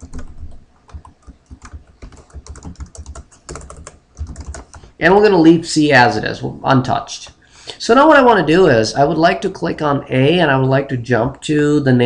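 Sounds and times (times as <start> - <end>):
typing on computer keyboard: 0.0 - 4.9.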